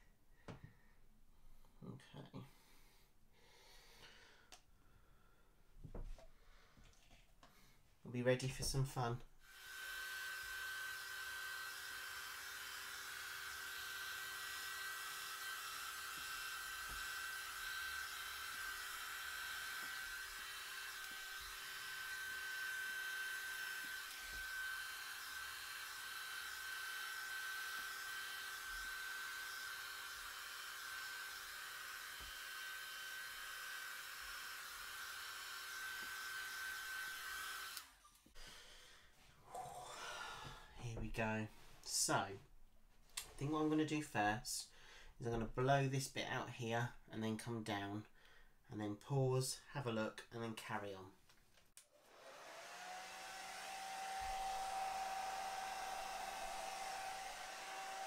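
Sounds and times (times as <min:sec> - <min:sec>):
hair dryer running: 0:08.6 - 0:38.1, 0:51.8 - 0:58.0.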